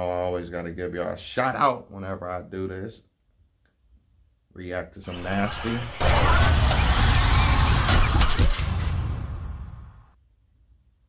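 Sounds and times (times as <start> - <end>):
sharp hits: 5.2 - 10.2.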